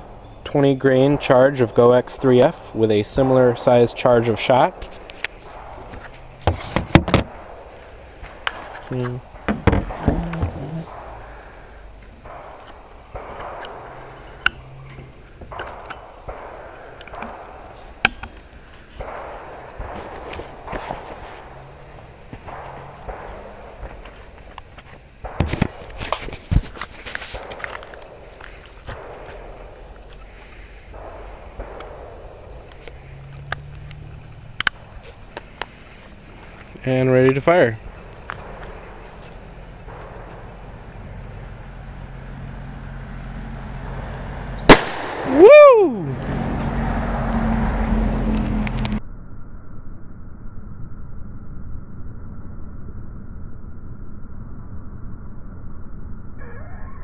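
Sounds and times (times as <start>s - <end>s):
camera handling knocks: 6.5s - 7.3s, 9.5s - 10.6s.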